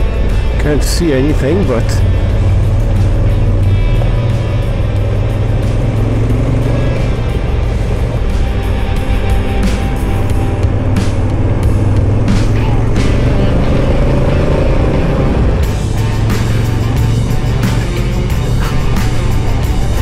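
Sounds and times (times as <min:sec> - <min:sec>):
motorcycle engine running: 0:00.0 - 0:20.0
music: 0:00.0 - 0:20.0.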